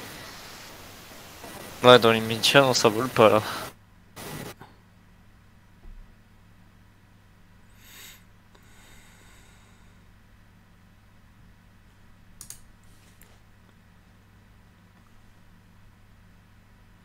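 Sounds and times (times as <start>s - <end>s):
faint sharp clicks: 12.4s - 12.7s.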